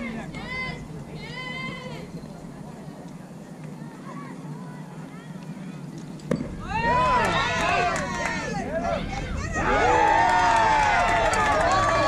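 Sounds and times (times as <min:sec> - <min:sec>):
crowd shouting and cheering: 0:06.5 - 0:12.0.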